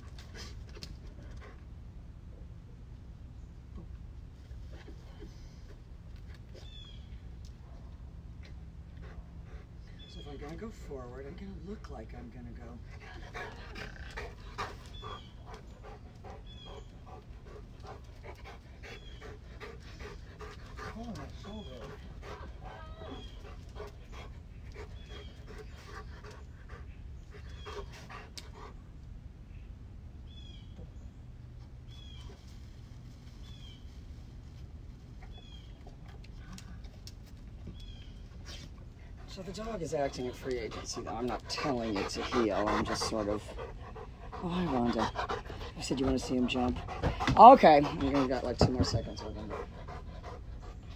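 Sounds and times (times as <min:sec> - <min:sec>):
dog panting: 0:08.9 - 0:09.8, 0:12.6 - 0:28.8, 0:38.4 - 0:50.9.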